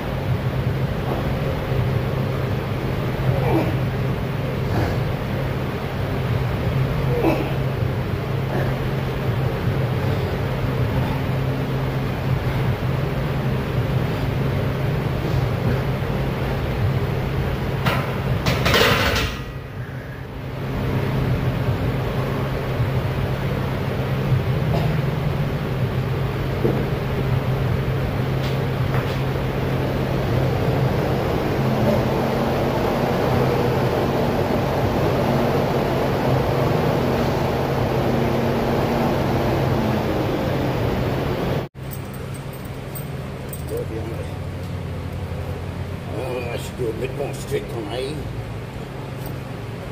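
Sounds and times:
steady low hum: 0.0 - 49.9.

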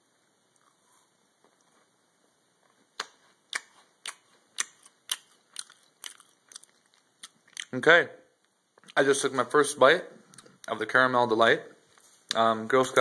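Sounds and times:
person chewing crunchy cookie: 0.5 - 1.2, 2.6 - 7.8.

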